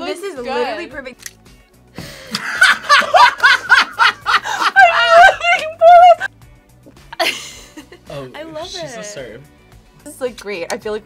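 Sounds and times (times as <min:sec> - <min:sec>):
person laughing: 0:02.2 - 0:06.3.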